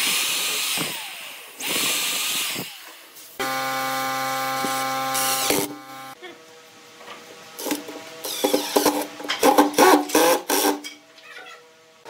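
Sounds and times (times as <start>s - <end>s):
impact driver whirring and hammering: 0.0s - 6.2s, 7.6s - 10.9s.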